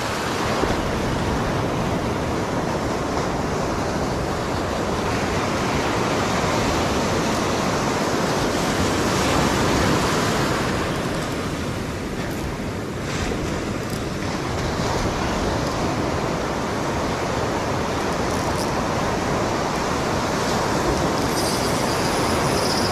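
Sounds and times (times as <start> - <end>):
ocean surf breaking: 0.0 - 22.9.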